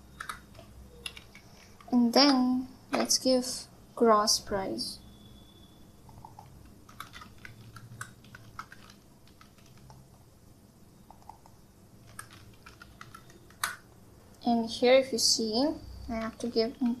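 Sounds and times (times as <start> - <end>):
low steady hum: 0.0 - 17.0
faint keyboard typing: 0.1 - 2.4, 6.0 - 10.3, 11.0 - 13.8, 16.1 - 17.0.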